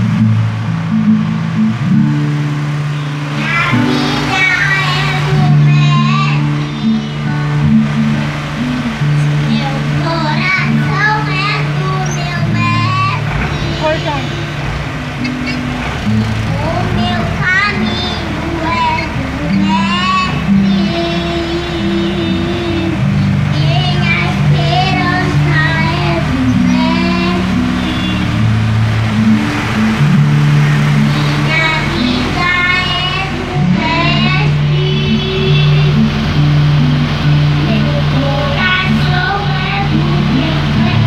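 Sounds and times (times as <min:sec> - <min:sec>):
amplified backing track: 0:00.0 - 0:41.0
truck engine and road noise: 0:00.0 - 0:41.0
girl singing into microphone: 0:01.8 - 0:08.2, 0:08.9 - 0:15.0, 0:16.1 - 0:28.5, 0:30.8 - 0:41.0.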